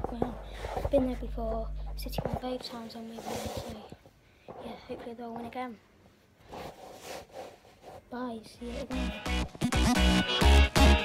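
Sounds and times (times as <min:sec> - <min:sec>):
clothing fabric rustling: 0:00.0 - 0:08.9.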